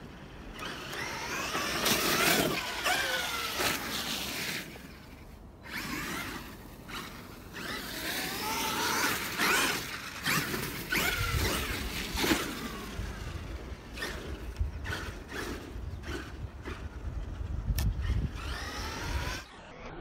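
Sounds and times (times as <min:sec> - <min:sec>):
tyres rushing on dirt and snow: 0:00.0 - 0:17.4
electric motor whining: 0:00.0 - 0:20.0.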